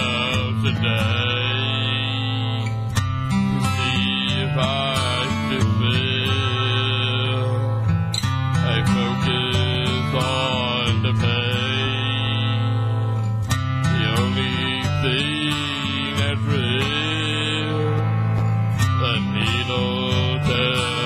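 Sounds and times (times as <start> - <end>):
acoustic guitar backing track: 0.0 - 21.0
man singing into a microphone: 0.0 - 21.0.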